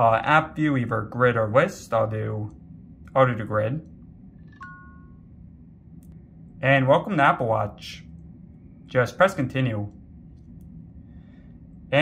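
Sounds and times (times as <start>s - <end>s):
faint electronic chime: 4.4s - 5.3s.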